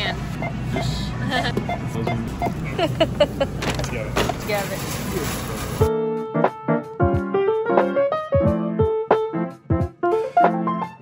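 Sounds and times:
store music: 0:00.0 - 0:11.0
piano tune: 0:05.6 - 0:11.0.

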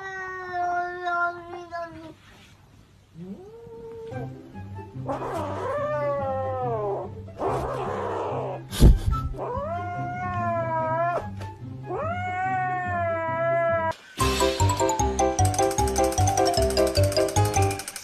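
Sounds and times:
cat yowling: 0:05.1 - 0:08.6, 0:09.4 - 0:13.9.

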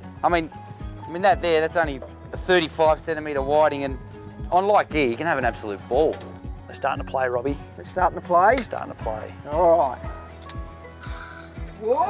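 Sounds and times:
background music with steady beat: 0:00.0 - 0:12.0
fishing reel clicking: 0:10.4 - 0:11.8.

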